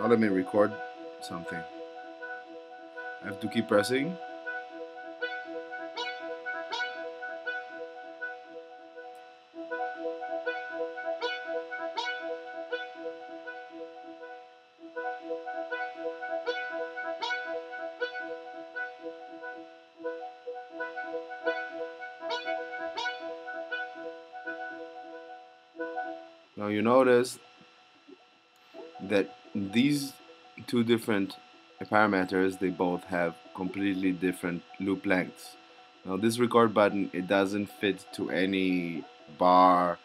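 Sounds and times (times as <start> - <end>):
arpeggiated synthesizer notes: 0.0 - 40.0.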